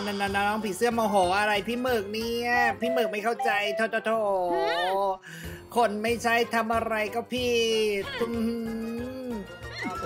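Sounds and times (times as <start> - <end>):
background music: 0.0 - 10.0
cartoon character vocal cry: 4.5 - 5.1.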